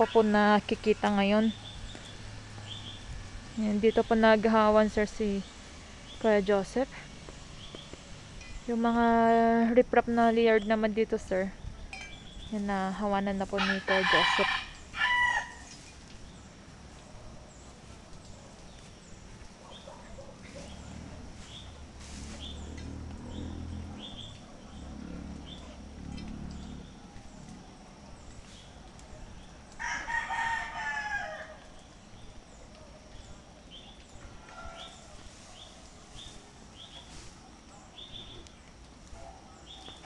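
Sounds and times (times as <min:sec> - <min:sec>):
faint outdoor background: 0:00.0 - 0:40.0
fowl crowing: 0:13.6 - 0:15.7, 0:29.8 - 0:31.6.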